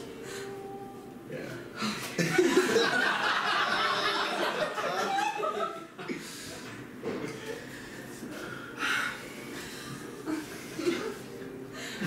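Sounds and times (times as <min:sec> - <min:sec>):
audience laughing: 0:02.2 - 0:06.0.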